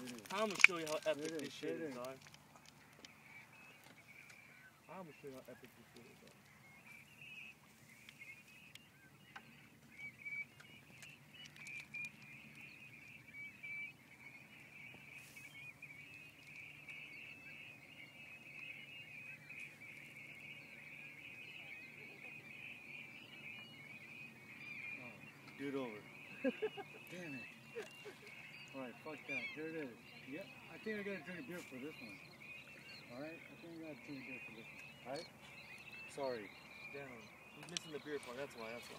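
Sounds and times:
distant flock of birds calling: 0.0 - 38.9.

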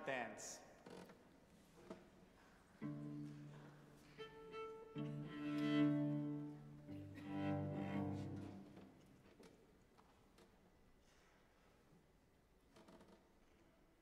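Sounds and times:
cello slow bowed notes: 2.8 - 9.3.

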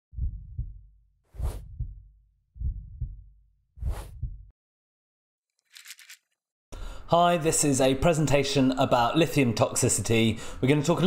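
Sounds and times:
heartbeat thumps: 0.1 - 4.5
whoosh: 1.4 - 1.6, 3.8 - 4.3.

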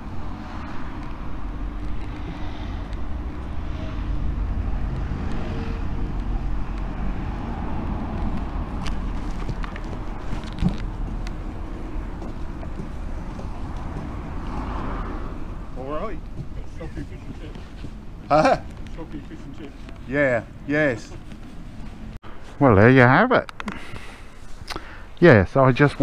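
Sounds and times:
road vehicles passing: 0.0 - 26.0.

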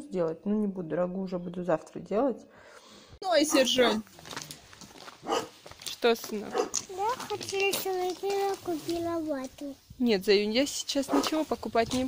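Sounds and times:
footsteps crunching on gravel: 3.9 - 9.2
dog bark: 5.2 - 5.6, 6.5 - 6.8, 11.1 - 11.4.

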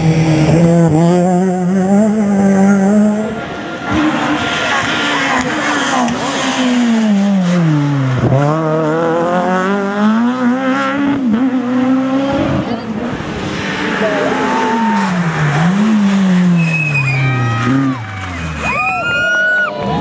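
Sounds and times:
second rally car engine revving: 0.0 - 18.7
rally car engine: 0.0 - 20.0.

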